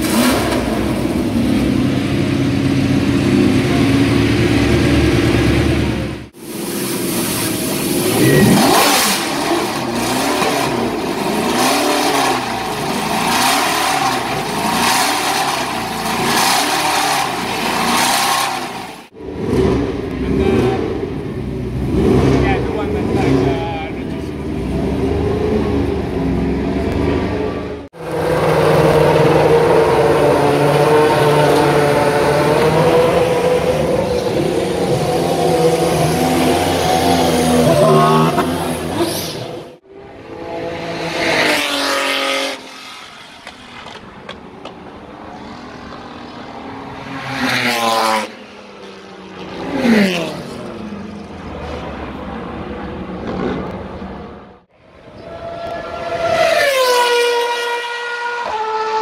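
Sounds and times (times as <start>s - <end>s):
race car engine revving: 0.0s - 59.0s.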